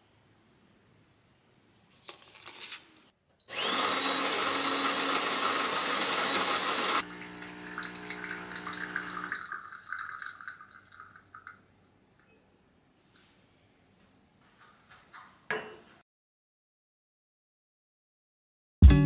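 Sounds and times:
coffee grinder whining: 3.5s - 9.4s
espresso pump humming: 3.5s - 9.6s
espresso streaming into cup: 3.5s - 10.2s.

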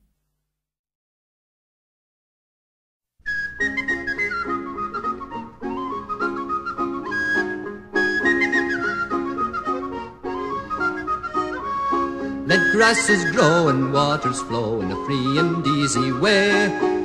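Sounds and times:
whistle-like folk melody: 3.2s - 17.0s.

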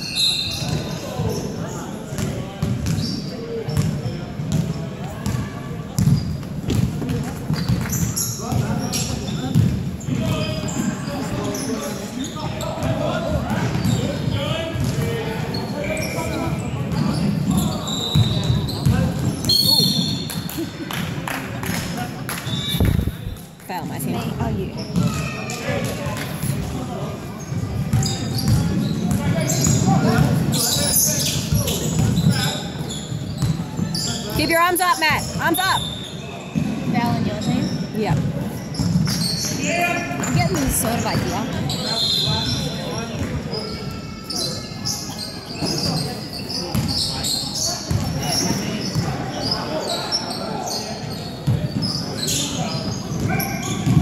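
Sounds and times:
indistinct voices in echoing gym: 0.0s - 54.0s
basketball bouncing on wooden court: 2.2s - 3.0s, 3.8s - 5.4s, 6.0s - 8.8s.

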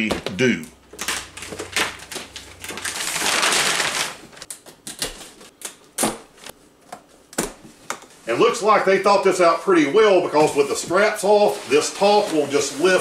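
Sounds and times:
plastic wrap rustling tear: 0.9s - 6.5s.

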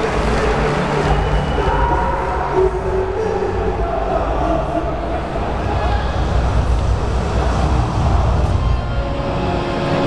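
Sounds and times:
crowd noise: 0.0s - 10.0s.

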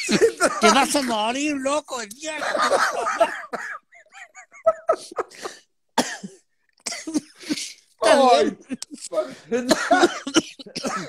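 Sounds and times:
men laughing: 0.0s - 1.4s, 2.2s - 5.7s.

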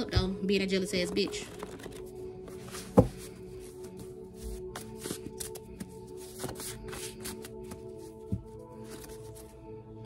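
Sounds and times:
background music: 0.0s - 10.0s
cards shuffled by hand: 1.4s - 3.7s, 4.4s - 9.5s.

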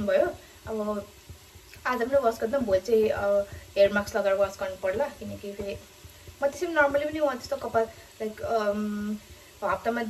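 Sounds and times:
woman speaking: 0.0s - 1.1s, 1.7s - 5.8s, 6.4s - 10.0s.

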